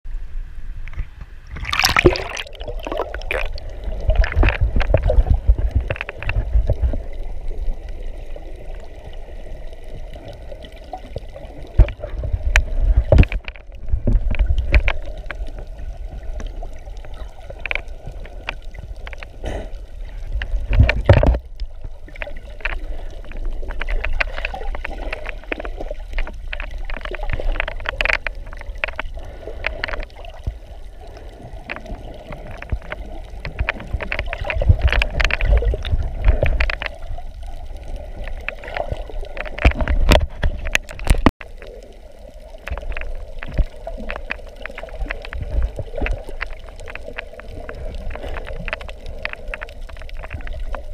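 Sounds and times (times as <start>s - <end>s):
underwater rumble of water: 0.1s - 50.9s
underwater clicks and crackles: 0.7s - 50.9s.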